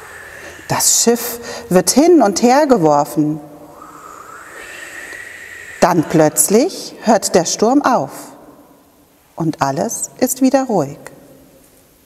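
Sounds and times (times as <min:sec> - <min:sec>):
imitated storm wind hiss: 0:00.0 - 0:08.2.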